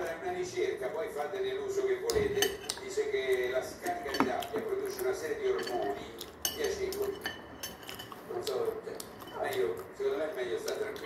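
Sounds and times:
cutlery scraping ceramic plate: 0:03.9 - 0:08.2.

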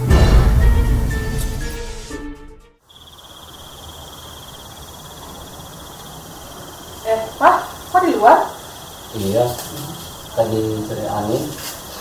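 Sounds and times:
music: 0:00.0 - 0:02.8
crickets chirring: 0:02.8 - 0:12.0.

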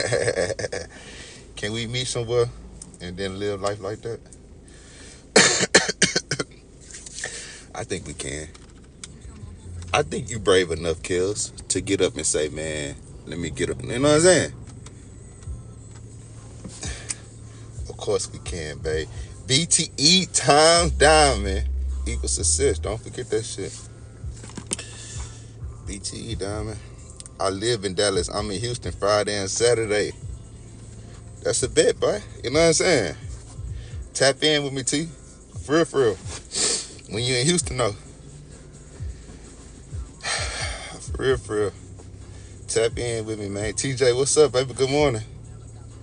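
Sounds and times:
steady low hum: 0:00.0 - 0:46.0
man coughing: 0:05.3 - 0:06.6.

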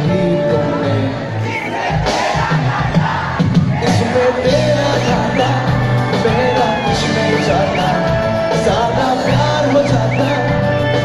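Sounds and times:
crowd cheering and shouting: 0:00.0 - 0:11.0
live band playing amplified music: 0:00.0 - 0:11.0
person singing: 0:03.8 - 0:11.0.

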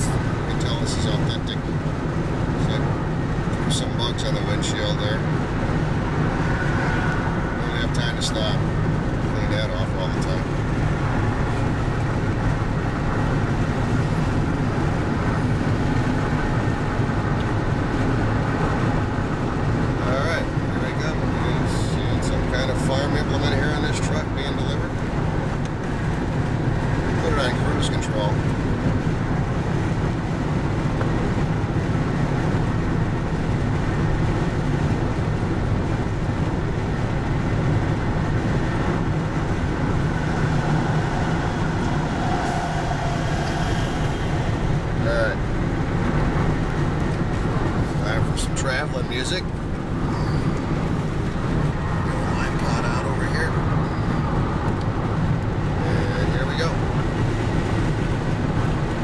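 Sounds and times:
car road noise: 0:00.0 - 0:59.0.

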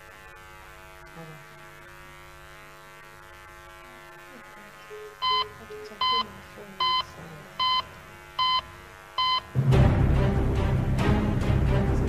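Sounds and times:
faint electrical hum: 0:00.0 - 0:09.6
short electronic beeps: 0:05.2 - 0:09.5
theme music: 0:09.6 - 0:12.0.

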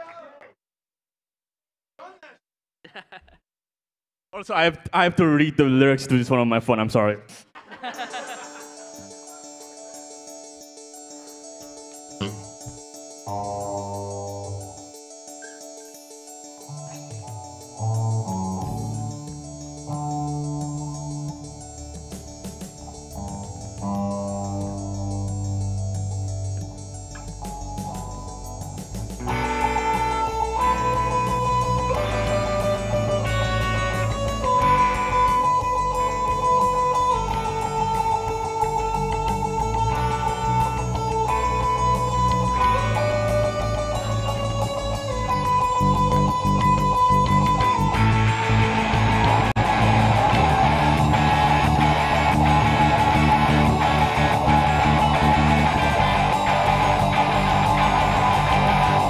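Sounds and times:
keyboard melody: 0:07.7 - 0:59.0
bass guitar: 0:12.2 - 0:14.7, 0:17.1 - 0:59.0
electric guitars: 0:13.3 - 0:14.8, 0:16.7 - 0:59.0.

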